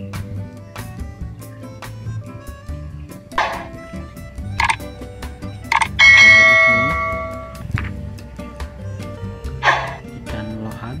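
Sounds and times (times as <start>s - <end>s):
background music with steady beat: 0.0s - 11.0s
bell-like notification chime: 6.0s - 7.6s.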